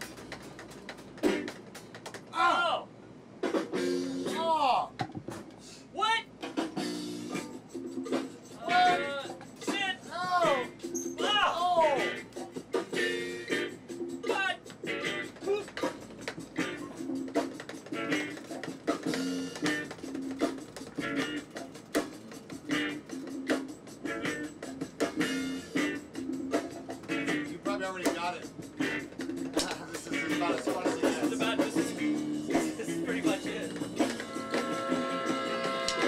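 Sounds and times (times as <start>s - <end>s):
drumsticks tapping: 0.0s - 2.3s, 14.7s - 16.4s, 29.2s - 31.1s
bass guitar riffs: 10.4s - 12.4s, 14.8s - 15.7s, 16.5s - 20.4s, 21.0s - 21.6s, 22.7s - 27.9s, 28.7s - 36.0s.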